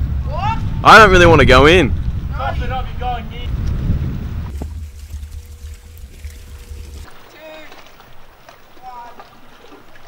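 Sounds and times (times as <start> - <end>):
wind rumble on microphone: 0.0 - 7.1.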